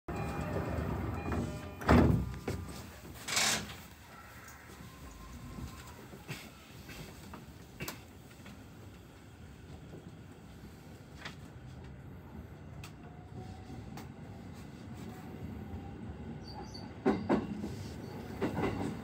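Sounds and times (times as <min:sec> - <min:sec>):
train doors thumping shut: 0:00.2 - 0:03.9, 0:16.8 - 0:19.0.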